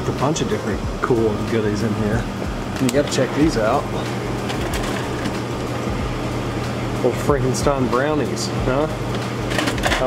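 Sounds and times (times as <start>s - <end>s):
cooler fans and compressor humming: 0.0s - 10.0s.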